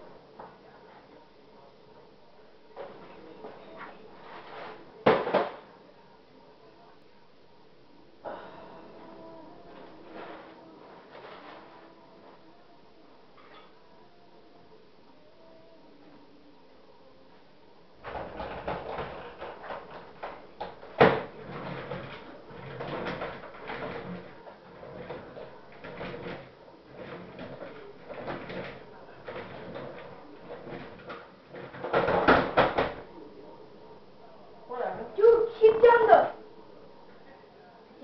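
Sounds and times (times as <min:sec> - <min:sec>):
knocks and handling noise: 0:02.7 - 0:05.8, 0:18.0 - 0:33.2.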